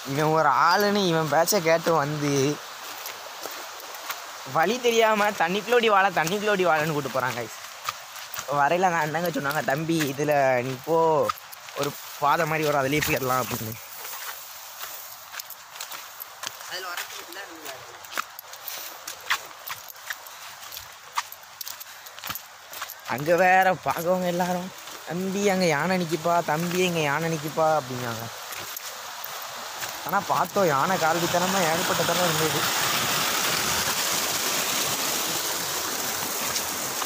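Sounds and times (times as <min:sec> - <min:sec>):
footsteps on forest path: 0:00.0 - 0:37.0
stream water rushing: 0:00.0 - 0:37.0.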